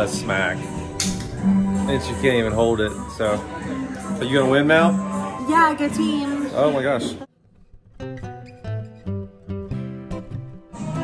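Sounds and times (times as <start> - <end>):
acoustic guitar playing chords: 0.0 - 6.5, 7.4 - 11.0.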